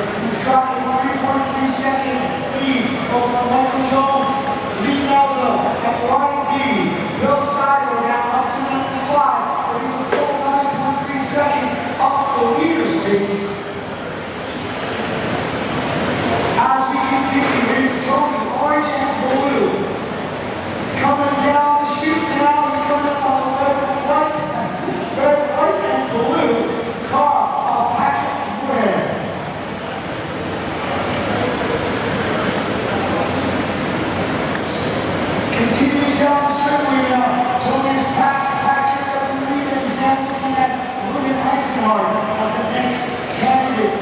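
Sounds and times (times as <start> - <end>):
electric motors whining: 13.4 - 38.1.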